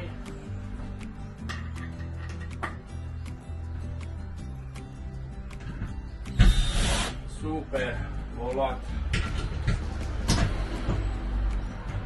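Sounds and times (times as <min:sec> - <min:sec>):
cordless drill driving screw: 0:06.4 - 0:07.2.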